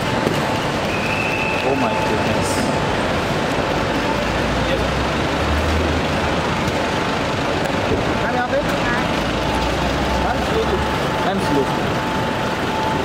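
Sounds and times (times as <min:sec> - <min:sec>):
crowd noise: 0:00.0 - 0:13.0
low vehicle rumble: 0:00.0 - 0:13.0
traffic: 0:00.0 - 0:13.0.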